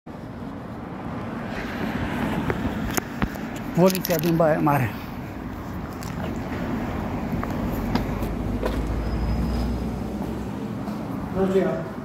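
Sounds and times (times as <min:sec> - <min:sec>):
low rumble of street noise: 0:00.1 - 0:12.0.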